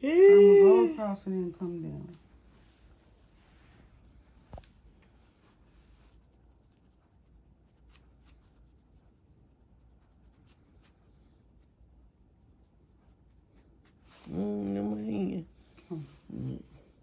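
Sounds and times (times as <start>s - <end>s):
comb scratching through hair: 5.0s - 15.3s.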